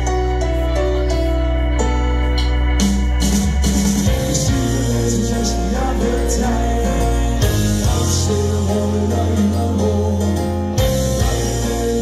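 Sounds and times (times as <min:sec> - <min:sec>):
bass guitar line: 0:00.0 - 0:12.0.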